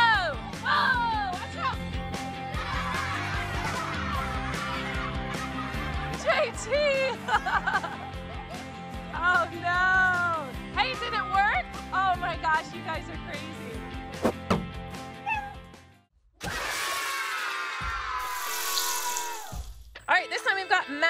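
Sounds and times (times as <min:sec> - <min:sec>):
background music: 0:00.0 - 0:16.9, 0:17.6 - 0:21.0
children shrieking and cheering: 0:02.4 - 0:06.1, 0:16.4 - 0:19.7.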